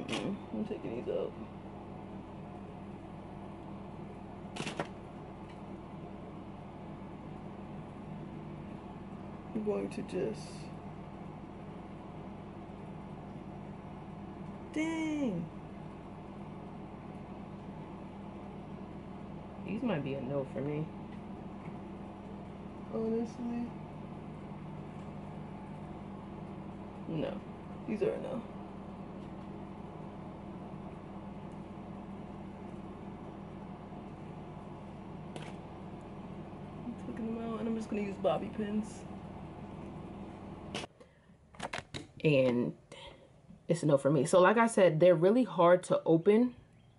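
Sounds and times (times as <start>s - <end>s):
low hum with faint hiss: 0.0s - 46.9s.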